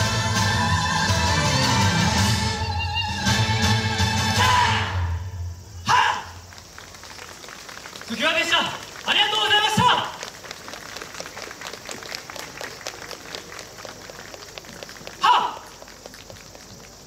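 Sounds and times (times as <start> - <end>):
loud voice shouting: 5.8 - 6.4, 8.2 - 10.2, 15.2 - 15.7
audience clapping: 6.4 - 17.0.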